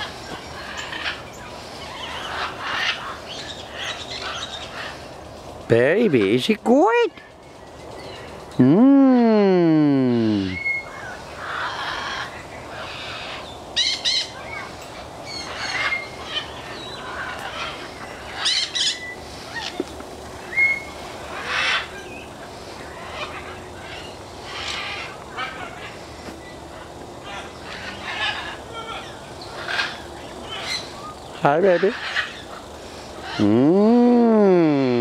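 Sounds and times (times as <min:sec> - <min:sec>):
parrots calling: 0:00.0 - 0:07.2, 0:09.8 - 0:35.0.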